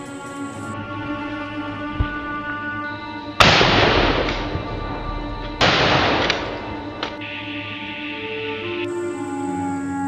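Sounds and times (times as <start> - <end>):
background music: 0.0 - 10.0
shotgun blasts: 3.4 - 7.3.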